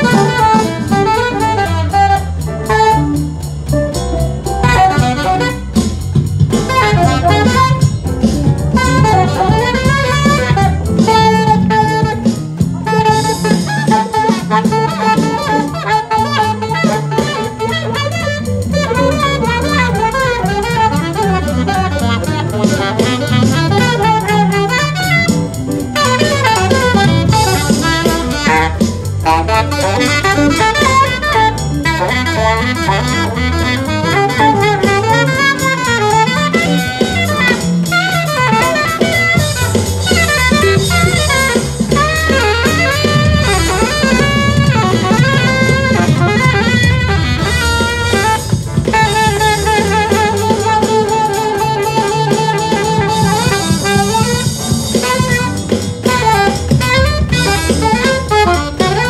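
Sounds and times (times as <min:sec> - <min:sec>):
alto saxophone runs: 0:00.0 - 0:59.0
bass: 0:00.0 - 0:59.0
drum kit: 0:00.0 - 0:59.0.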